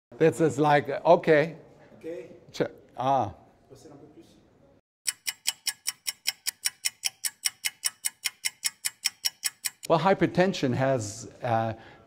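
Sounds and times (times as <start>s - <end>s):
fast even ticking: 5.0s - 9.9s.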